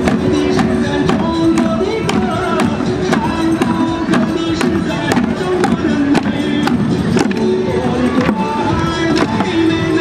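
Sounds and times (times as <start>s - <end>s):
melody over drum beat: 0.0s - 10.0s.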